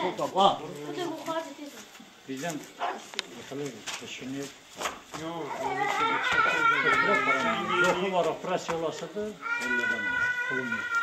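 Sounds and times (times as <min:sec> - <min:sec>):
low voices: 0:05.2 - 0:11.0
high animal call: 0:09.4 - 0:11.0.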